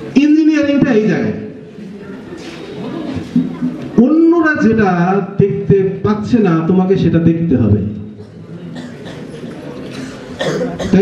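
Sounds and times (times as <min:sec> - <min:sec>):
person coughing: 0:08.2 - 0:11.0.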